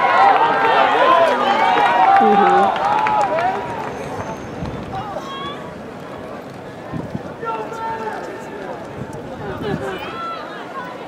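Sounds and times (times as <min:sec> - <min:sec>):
distant voices: 0:00.0 - 0:11.0
outdoor stadium ambience: 0:00.0 - 0:11.0.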